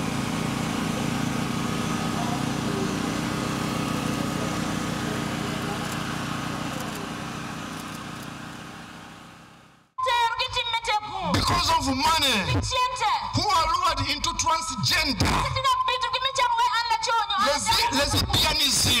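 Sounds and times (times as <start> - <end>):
low engine hum: 0.0 - 9.9
faint voices: 0.8 - 7.4.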